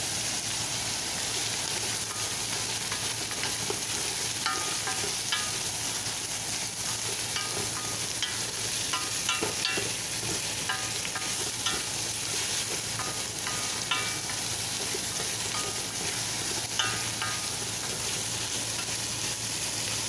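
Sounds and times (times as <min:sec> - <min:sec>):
meat sizzling in a pot: 0:00.0 - 0:20.0
utensil scraping and clinking on pot: 0:02.0 - 0:06.0, 0:06.6 - 0:19.0.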